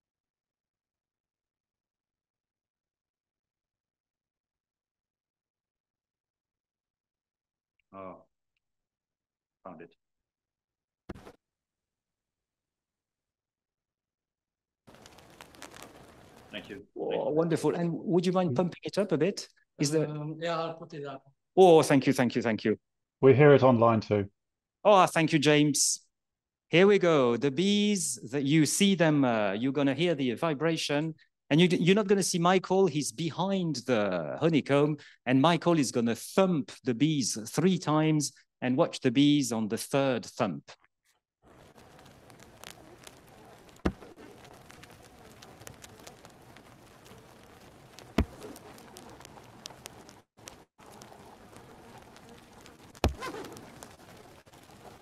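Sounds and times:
faint hiss with crackling clicks: 14.9s - 16.8s, 41.5s - 55.0s
bee colony humming: 50.7s - 55.0s.

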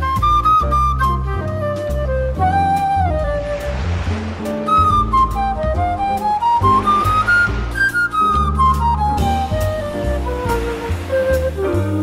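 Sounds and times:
swing jazz: 0.0s - 12.0s.

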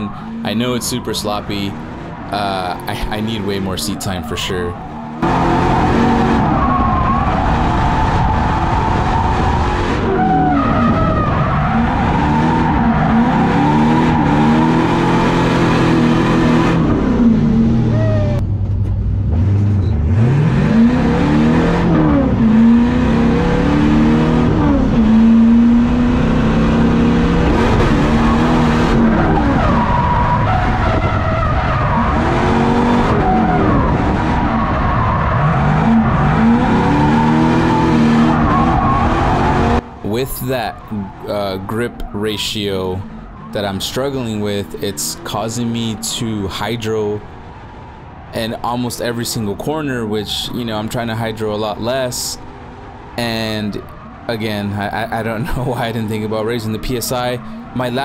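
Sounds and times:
car engine revving: 0.0s - 58.0s
tyres skidding: 0.0s - 58.0s.

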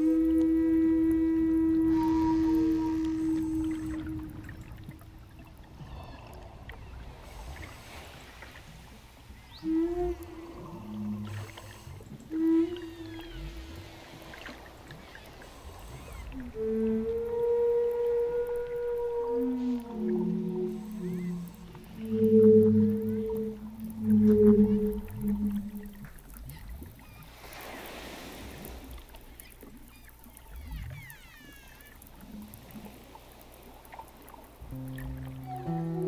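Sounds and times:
wooden flute playing slow notes: 0.0s - 6.3s, 9.5s - 26.4s, 34.6s - 36.0s.

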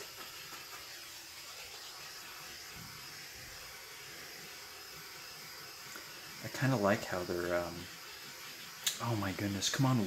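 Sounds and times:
torch flame hissing: 0.0s - 10.0s.

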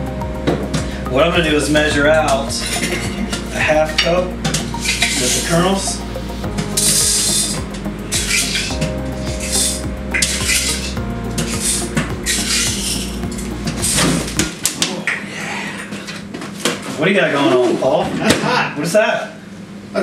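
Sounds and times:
low hum: 0.0s - 14.8s.

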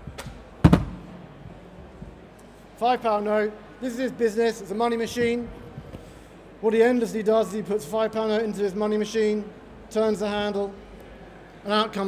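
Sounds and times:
loud thump on lectern: 0.6s - 1.1s.

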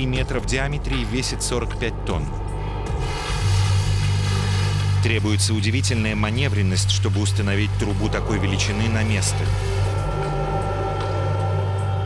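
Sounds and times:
winch low mechanical hum: 0.0s - 12.0s
held tones: 7.1s - 12.0s.

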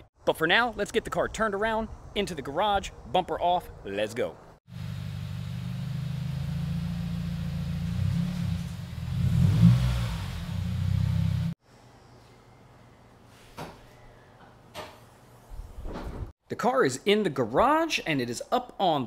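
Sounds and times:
car engine running at low revs: 4.7s - 11.6s.

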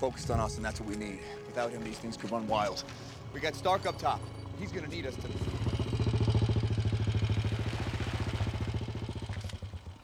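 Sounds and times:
motorcycle engine running: 2.7s - 10.0s.

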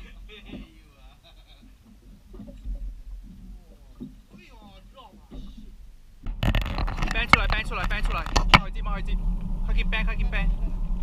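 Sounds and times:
sharp knocks: 5.2s - 8.7s
low rumble: 5.3s - 11.0s.

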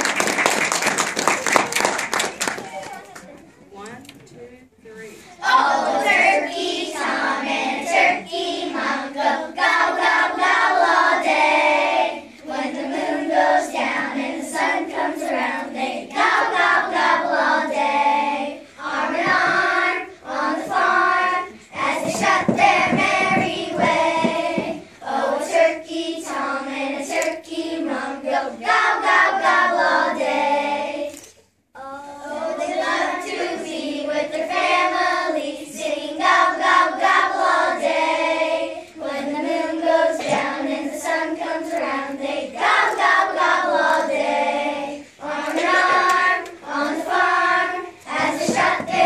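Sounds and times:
children singing in unison: 5.4s - 49.0s.

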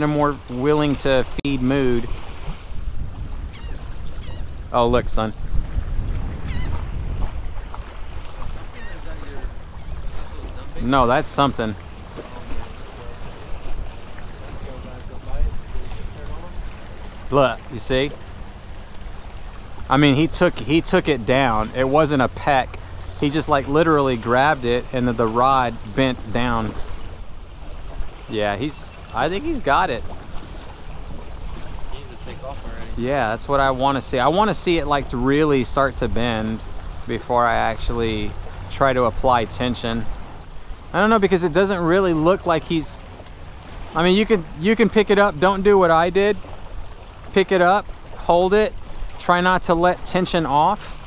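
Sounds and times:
wind buffeting microphone: 0.0s - 49.2s
choppy water: 0.0s - 51.0s
faint bird calls: 3.4s - 4.6s, 6.4s - 6.8s, 8.6s - 10.0s.

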